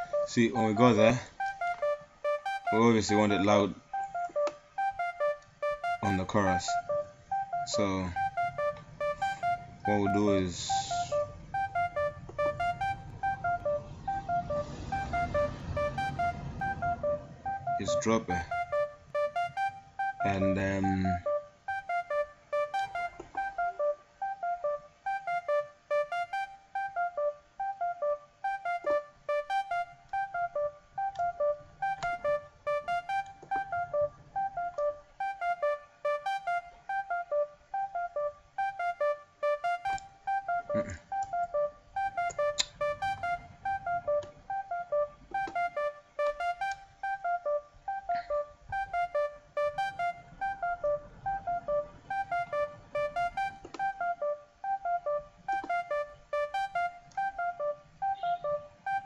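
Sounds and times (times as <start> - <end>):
faint low bass: 0.0 - 59.0
synth lead riff: 0.0 - 59.0
sharp clicks: 42.2 - 42.8.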